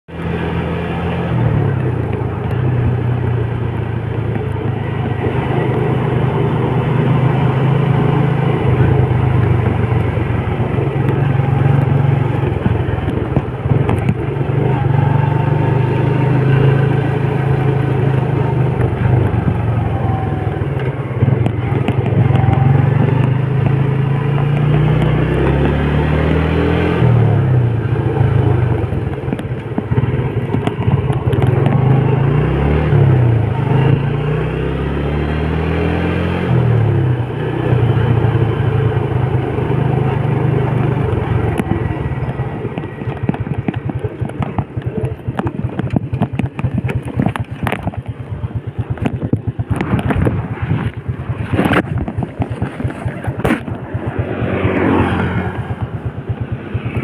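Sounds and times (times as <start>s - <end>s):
road noise: 0.0s - 57.0s
motorcycle engine running: 0.1s - 57.0s.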